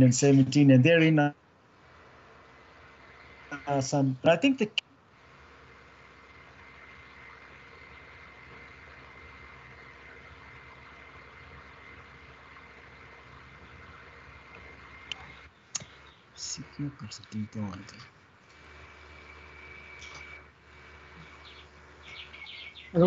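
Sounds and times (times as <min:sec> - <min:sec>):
faint audio line hiss: 0:00.0 - 0:23.0
low hum: 0:00.0 - 0:23.0
thin high whine: 0:00.0 - 0:23.0
person speaking: 0:03.5 - 0:04.8, 0:16.4 - 0:18.1.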